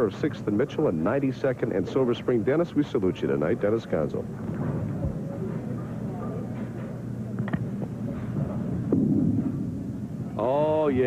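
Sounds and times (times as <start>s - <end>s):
faint audience murmur: 0.1s - 11.0s
low rumble: 8.4s - 10.9s.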